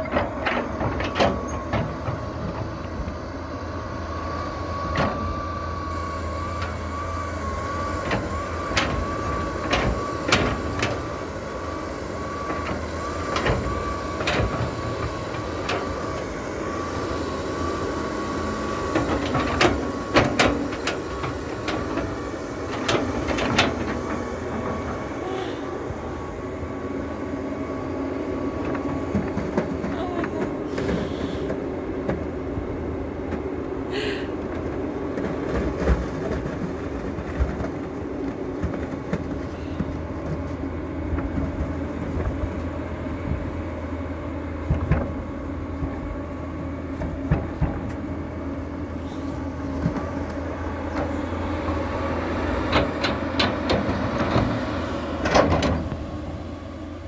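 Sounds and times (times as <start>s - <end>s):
excavator bucket clanking: 0.0s - 3.2s, 8.0s - 11.2s, 18.9s - 25.3s, 28.5s - 32.3s, 49.0s - 56.2s
high hydraulic whine: 0.0s - 37.3s, 39.0s - 57.0s
diesel engine under load: 0.0s - 57.0s.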